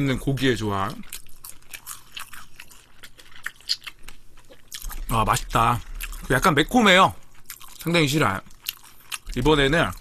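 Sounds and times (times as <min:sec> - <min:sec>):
chewing fried food: 0:00.0 - 0:10.0.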